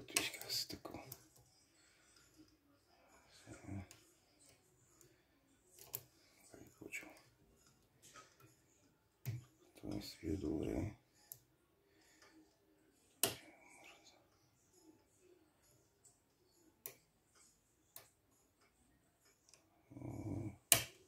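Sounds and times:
faint ticks and scrapes: 0.0s - 21.0s.

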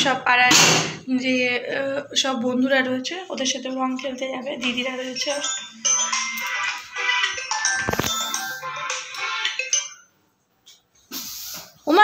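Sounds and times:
phone musical ringtone: 4.6s - 10.2s.

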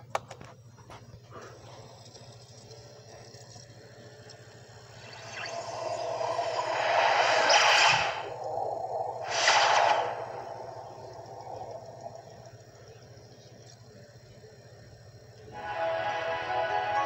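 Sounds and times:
steady low hum: 0.0s - 17.0s
whooshing logo sound effect: 5.2s - 12.0s.

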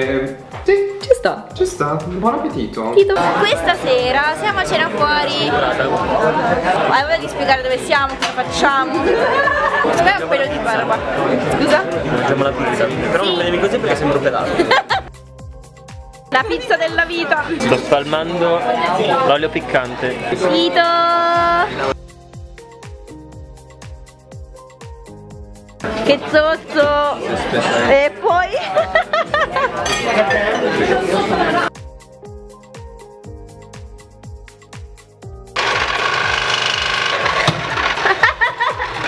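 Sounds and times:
background music with steady beat: 0.0s - 35.6s
electric juicer running: 35.6s - 39.0s.

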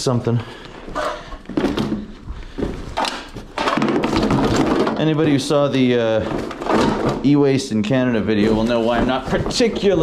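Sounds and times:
rustling and scraping in cardboard box: 8.3s - 10.0s.

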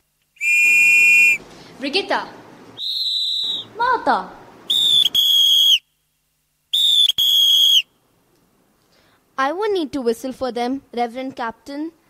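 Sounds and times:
whistle blasts: 0.4s - 1.4s, 2.8s - 3.7s, 4.7s - 6.0s, 6.7s - 8.0s.

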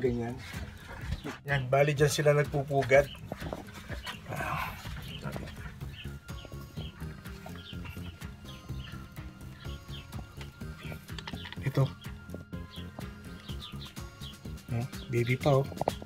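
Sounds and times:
high bird chirps: 2.9s - 15.8s.

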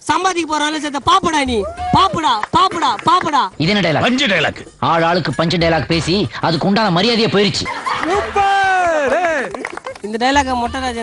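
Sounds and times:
young man speaking rapidly: 0.1s - 9.5s
man speaking: 1.9s - 9.5s.

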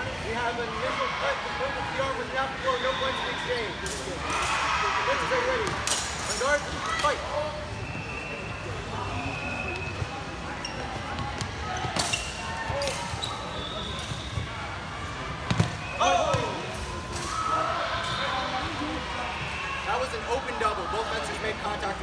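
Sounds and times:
chatter in a large hall: 0.0s - 22.0s.

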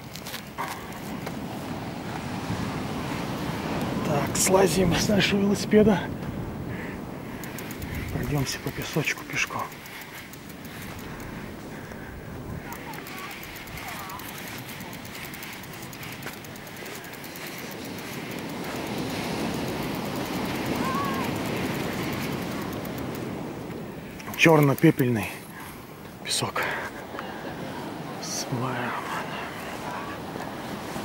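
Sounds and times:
steady outdoor rush: 0.0s - 31.0s.

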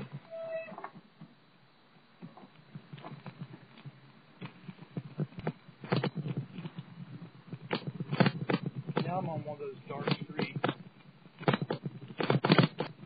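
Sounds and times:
short high squeak: 0.3s - 0.9s
bicycle frame rattling: 3.0s - 13.0s.

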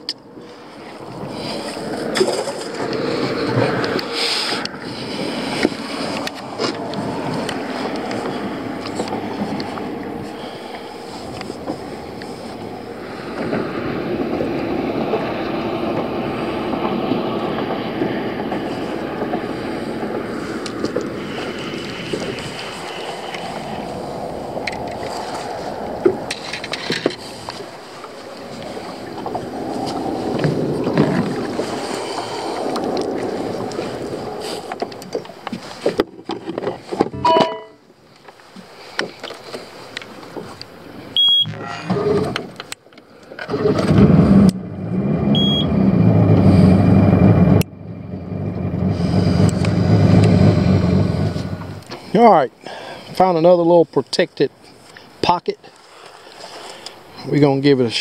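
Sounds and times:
wind buffeting microphone: 0.0s - 41.2s, 43.5s - 53.2s
short high beeps: 37.2s - 37.8s, 41.2s - 42.2s, 45.4s - 45.7s
outboard motor running: 43.5s - 52.1s.

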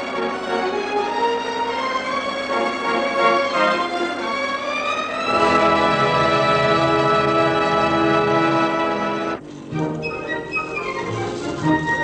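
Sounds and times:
full orchestra: 0.0s - 12.0s
violins playing flowing melody: 0.0s - 12.0s.

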